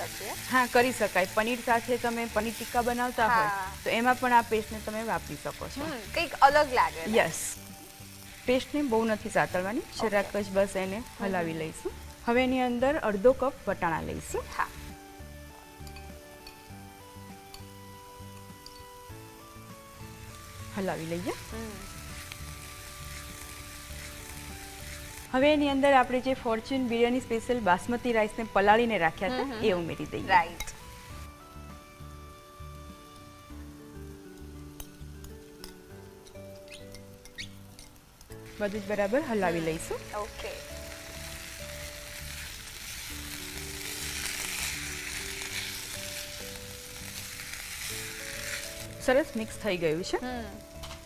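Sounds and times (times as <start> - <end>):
background music: 0.0 - 51.0
food sizzling in a pan: 0.0 - 51.0
spatula stirring in a pan: 40.9 - 49.0.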